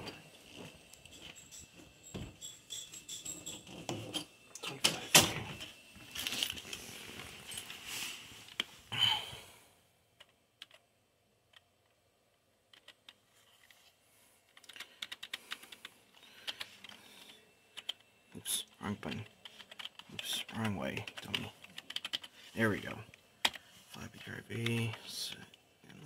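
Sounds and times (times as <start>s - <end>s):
rustling handling noise: 6.0s - 8.8s.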